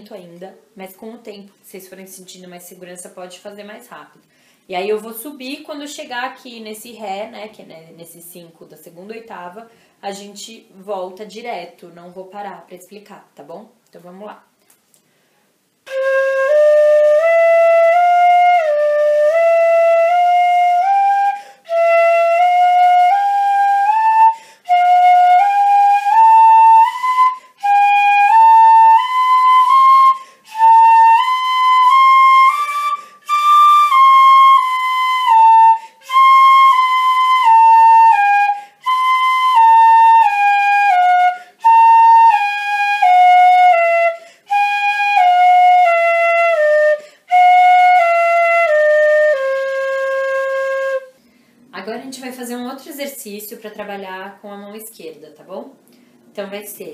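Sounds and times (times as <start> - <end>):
quick breath: 4.3 - 4.7, 9.7 - 10.0, 21.4 - 21.6, 24.3 - 24.7, 30.2 - 30.5, 44.2 - 44.5, 47.0 - 47.3, 51.2 - 51.7.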